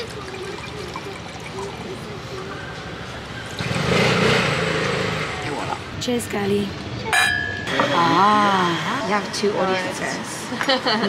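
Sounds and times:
faint background talk: 0.0s - 3.3s
vehicle passing: 2.3s - 10.4s.

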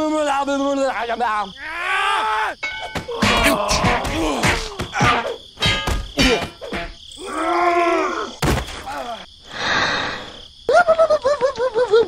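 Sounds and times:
sharp thump impact: 8.4s - 8.8s.

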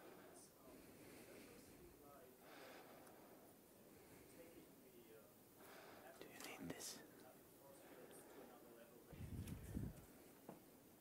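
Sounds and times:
faint hushed speech: 0.0s - 10.4s.

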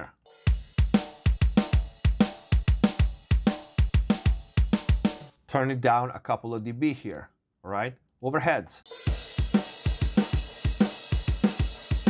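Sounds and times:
kick drum: 0.5s - 5.1s
snare drum: 0.5s - 5.3s, 9.0s - 12.0s.

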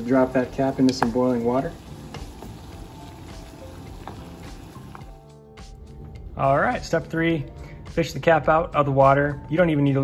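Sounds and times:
water boiling in saucepan: 0.0s - 5.2s.

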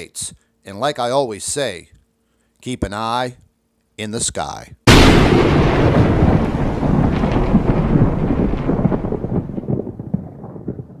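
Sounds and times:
deep rumble with crackles: 5.0s - 11.0s.

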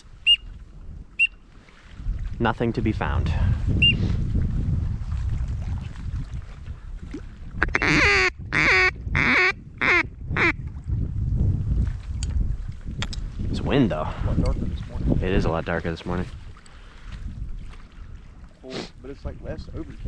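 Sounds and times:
duck quacking: 7.6s - 10.6s.

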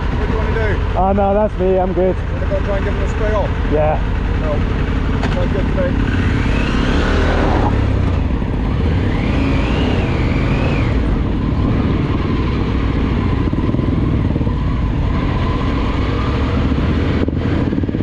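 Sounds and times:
motorcycle engine running: 0.0s - 18.0s.

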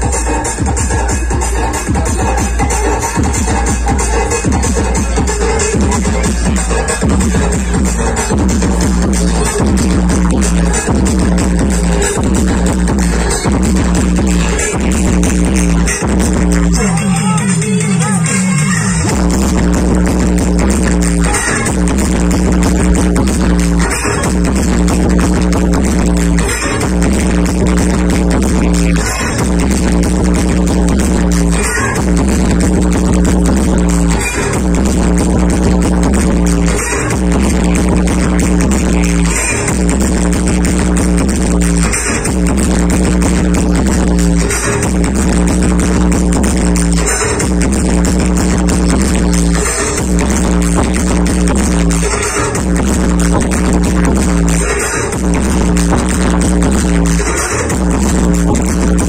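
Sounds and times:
electronic dance music on loudspeakers: 0.0s - 59.0s.

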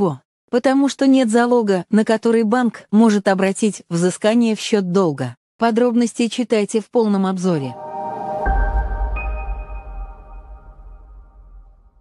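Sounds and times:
high ping-like tone: 7.8s - 11.9s
deep bass boom: 8.4s - 12.0s.

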